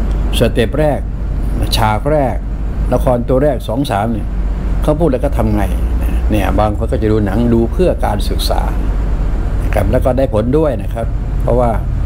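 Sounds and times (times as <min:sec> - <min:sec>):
steady low hum: 0:00.0 - 0:12.0
man talking: 0:00.3 - 0:08.9, 0:09.6 - 0:11.9.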